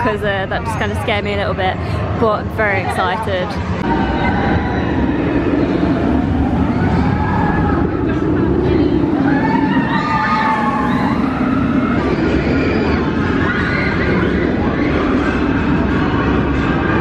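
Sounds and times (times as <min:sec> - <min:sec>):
people chattering: 0:00.0 - 0:13.4
wind buffeting microphone: 0:00.0 - 0:17.0.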